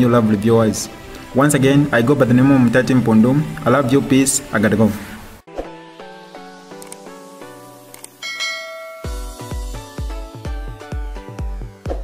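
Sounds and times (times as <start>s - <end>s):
background music of even notes: 0.0s - 12.0s
notification bell chime: 8.2s - 9.8s.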